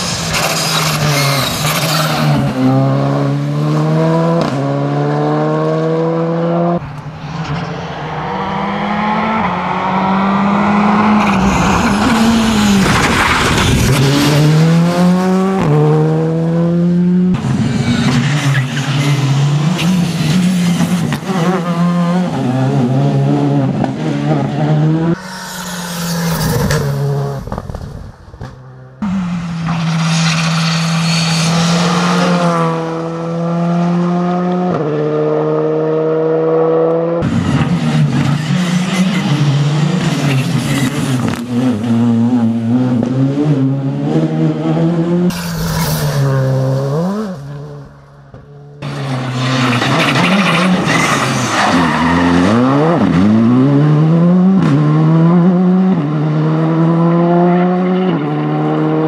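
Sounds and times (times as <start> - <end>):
rally car engine driven hard: 0.0 - 59.0.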